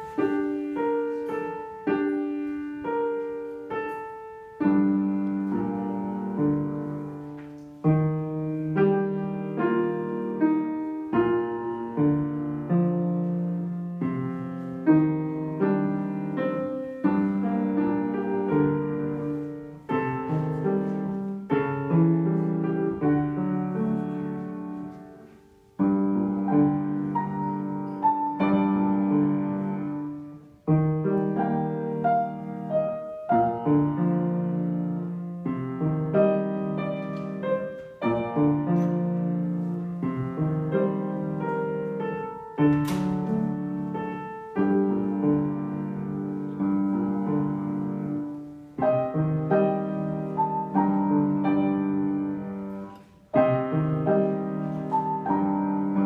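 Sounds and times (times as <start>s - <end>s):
upright piano slow melody: 0.0s - 56.0s.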